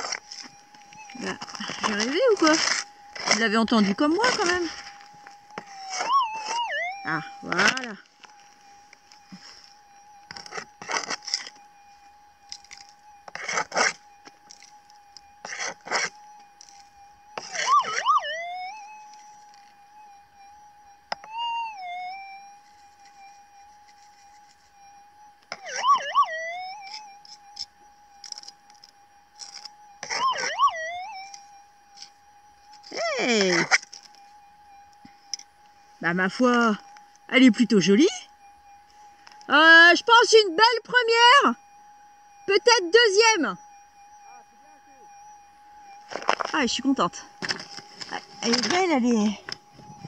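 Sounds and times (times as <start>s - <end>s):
metal detector warbling tone: 0.0s - 9.7s, 17.4s - 19.7s, 21.1s - 22.4s, 25.5s - 28.5s, 29.4s - 32.1s, 32.7s - 34.1s, 35.0s - 38.4s, 39.2s - 41.6s, 42.5s - 43.6s, 44.3s - 50.0s.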